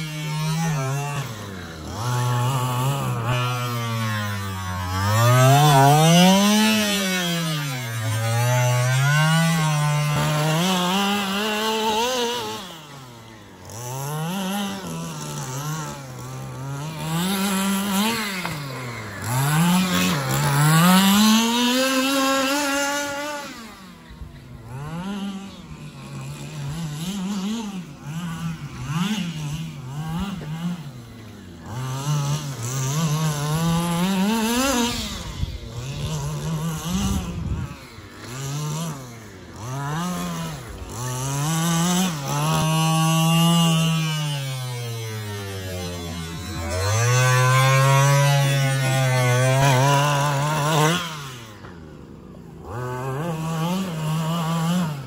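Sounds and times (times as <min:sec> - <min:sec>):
small two-stroke engine revving: 0:00.0 - 0:55.0.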